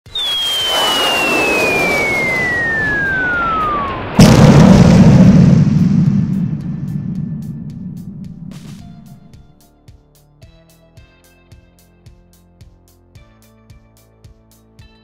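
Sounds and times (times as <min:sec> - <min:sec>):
whistle falling in pitch: 0:00.1 - 0:04.4
loud boom with deep rumble: 0:00.1 - 0:09.6.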